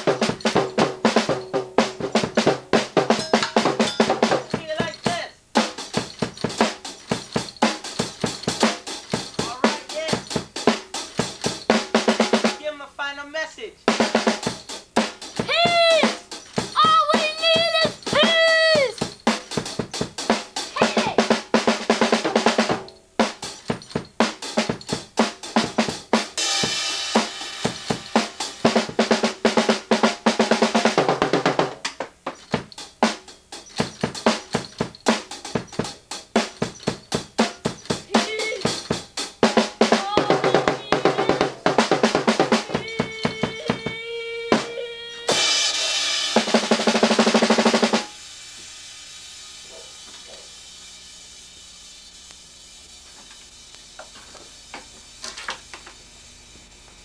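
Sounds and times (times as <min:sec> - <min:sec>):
instrumental drum-led music: 0:00.0 - 0:12.8, 0:13.9 - 0:48.2
faint steady hiss: 0:00.0 - 0:57.0.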